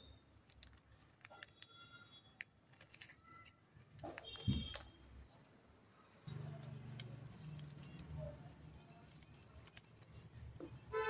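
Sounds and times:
paper crinkling and rustling: 0.5 - 1.7, 2.4 - 5.1, 6.3 - 11.0.

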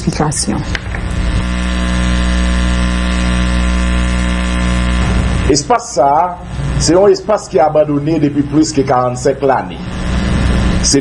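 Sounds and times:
low mechanical drone: 0.0 - 11.0.

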